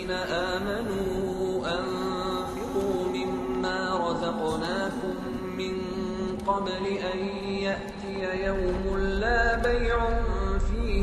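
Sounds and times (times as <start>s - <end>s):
low drone: 7.1s - 11.0s.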